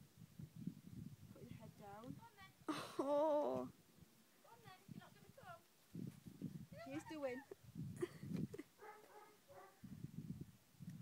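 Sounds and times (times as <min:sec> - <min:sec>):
giggling: 0:06.9 - 0:08.8.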